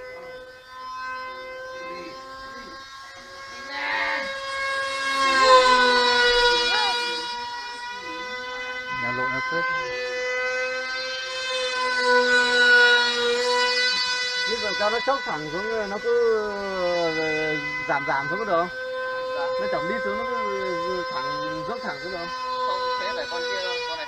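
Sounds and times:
model plane motor whine: 0.0 - 24.0.

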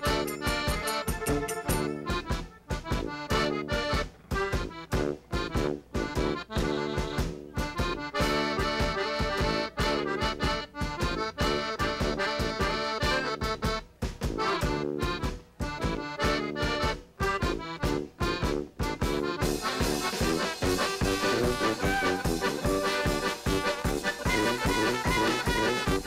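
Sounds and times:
accordion: 0.0 - 26.0
band playing live: 0.0 - 26.0
drums: 0.0 - 26.0
tuba: 0.0 - 26.0.

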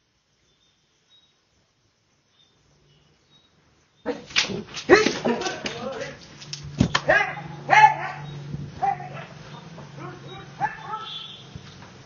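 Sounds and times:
dog barking: 7.0 - 11.4.

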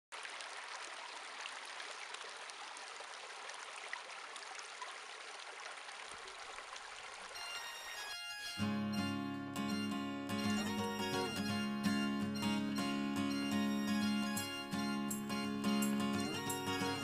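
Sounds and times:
stream running over rocks: 0.1 - 8.1
faint guitar tones: 8.6 - 17.0.

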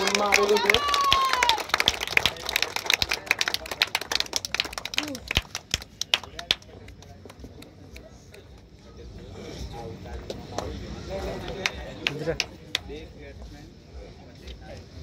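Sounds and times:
people clapping: 0.0 - 8.8, 10.3 - 13.1.

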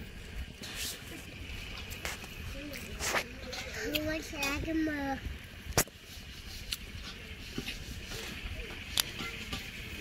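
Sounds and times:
steady high hiss: 0.0 - 10.0.

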